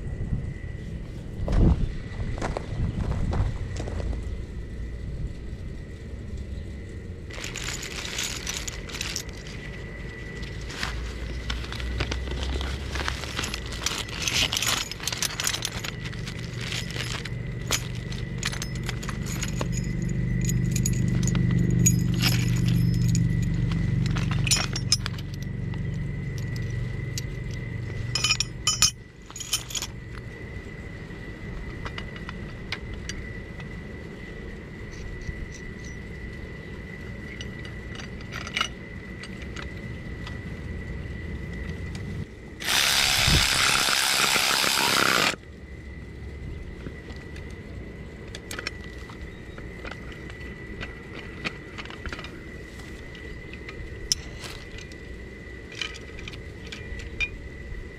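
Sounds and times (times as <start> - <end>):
low droning hum: 0.0 - 57.9
metal parts clinking: 7.2 - 30.2, 31.5 - 33.3, 34.8 - 36.2, 37.2 - 40.4, 42.6 - 45.4, 48.3 - 57.4
plastic bag crinkling: 7.3 - 9.8, 10.5 - 19.4.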